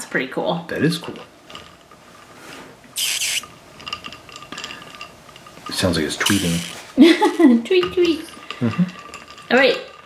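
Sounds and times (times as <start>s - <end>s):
short hissing burst: 3.0s - 3.5s, 6.2s - 6.8s
toy squeaking under water: 3.0s - 3.5s, 6.2s - 6.8s.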